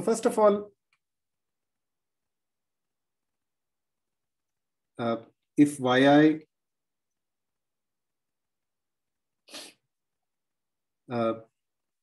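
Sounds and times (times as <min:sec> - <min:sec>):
man's sharp breath: 0:09.5 - 0:09.8.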